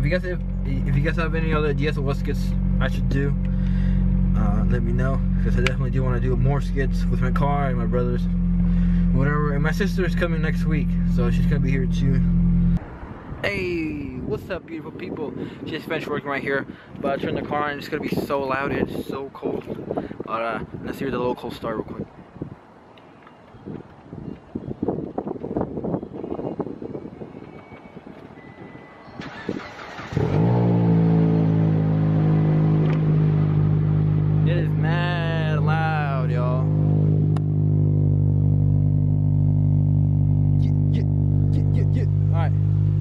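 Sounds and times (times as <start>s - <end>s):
car engine idling: 0.0s - 12.8s, 29.8s - 43.0s.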